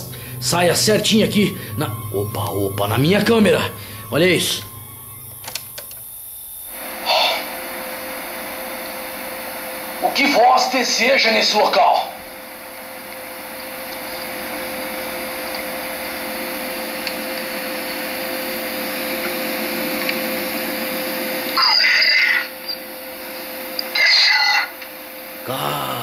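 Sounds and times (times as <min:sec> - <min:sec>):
tape hiss: 0:00.0 - 0:24.1
constant hum tone: 0:00.0 - 0:26.0.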